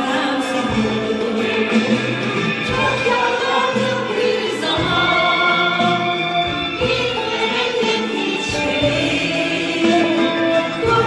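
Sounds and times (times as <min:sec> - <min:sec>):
woman singing: 0:00.0 - 0:11.0
instrumental ensemble with oud: 0:00.6 - 0:11.0.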